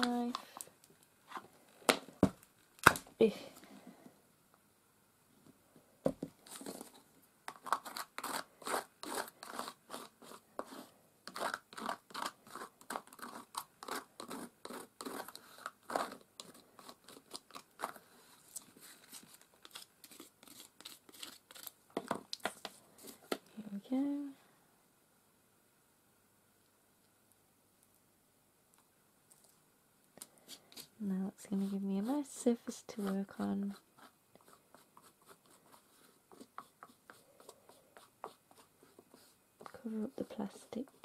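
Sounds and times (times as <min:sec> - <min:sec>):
palette knife scraping canvas: 0:06.5 - 0:21.8, 0:31.5 - 0:41.0.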